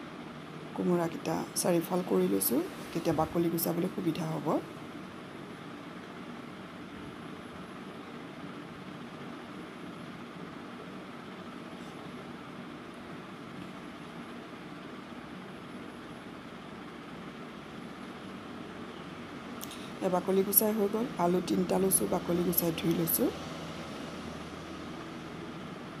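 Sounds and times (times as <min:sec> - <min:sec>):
faint hum: 0:00.0 - 0:26.0
steady background hiss: 0:00.0 - 0:26.0.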